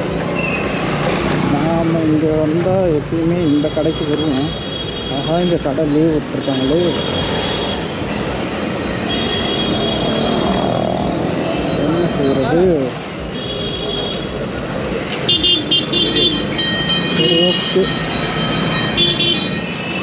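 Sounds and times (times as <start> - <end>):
motorcycle engine and road noise: 0.0 - 20.0
street traffic: 0.0 - 20.0
vehicle horns tooting: 9.0 - 10.5, 15.3 - 17.9, 18.6 - 20.0.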